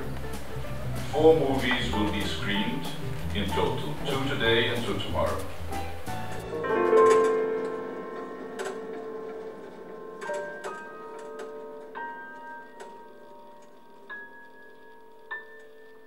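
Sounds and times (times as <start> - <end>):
sparse piano notes: 0.0 - 16.0.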